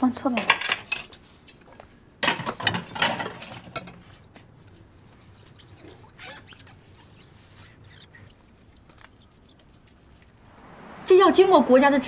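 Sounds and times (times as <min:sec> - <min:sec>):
soft scrapes and squeaks on counter: 0:03.0 - 0:10.5.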